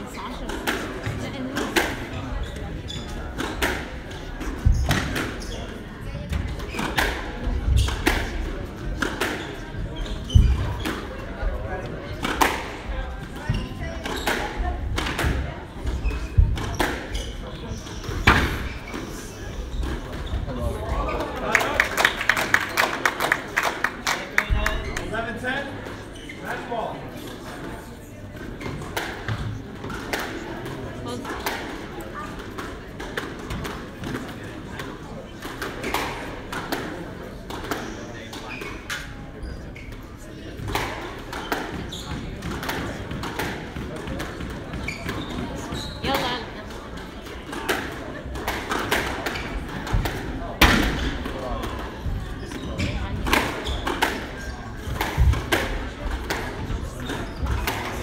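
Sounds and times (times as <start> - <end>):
murmuring voices: 0.0 - 58.0
squash racket strikes: 0.4 - 20.5, 28.4 - 39.1, 39.8 - 58.0.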